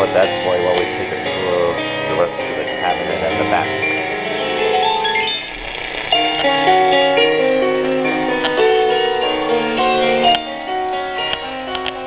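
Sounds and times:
music from tube radio loudspeaker: 0.0s - 12.0s.

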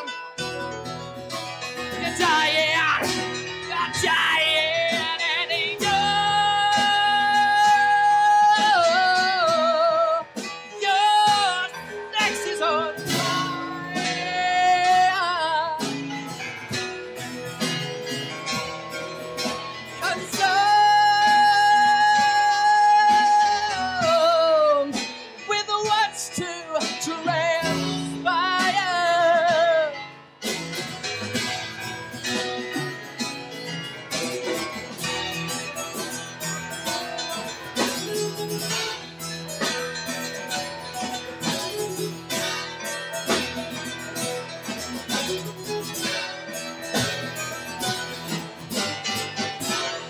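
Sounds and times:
guitar strummed and picked: 0.0s - 50.0s
man singing: 1.8s - 16.2s, 19.5s - 30.2s.

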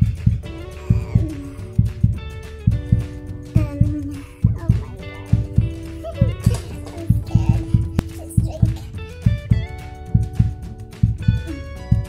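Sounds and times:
music with thumping beat: 0.0s - 12.0s.

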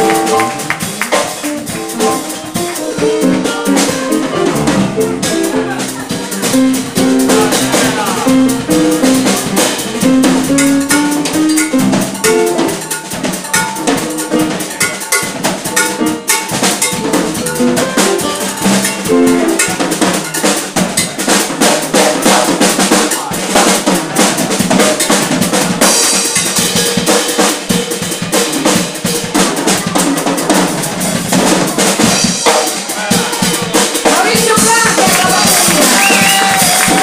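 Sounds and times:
electric bass line: 0.0s - 14.7s, 15.4s - 22.8s
cymbals washing: 0.0s - 37.0s
drum kit: 0.0s - 37.0s.

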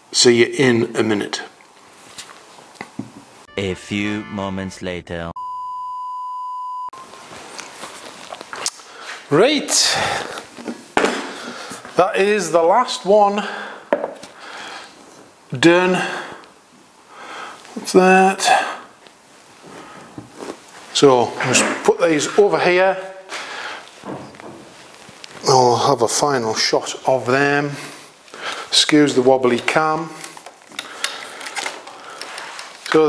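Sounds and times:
faint handling rustling: 19.0s - 21.5s, 23.3s - 26.6s
footsteps: 23.3s - 25.6s.

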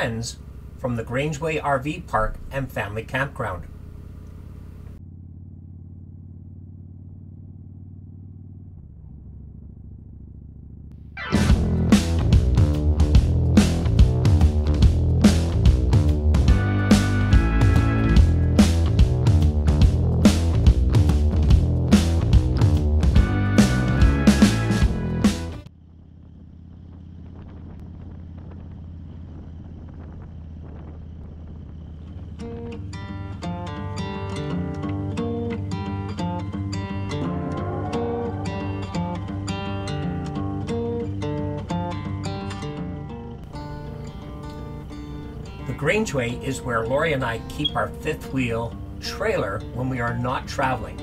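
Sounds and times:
motorcycle engine running: 0.0s - 51.0s.

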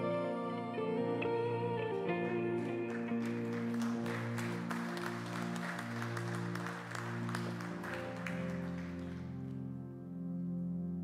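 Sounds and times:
band holding sustained chords: 0.0s - 11.0s
audience applauding: 2.0s - 9.8s.

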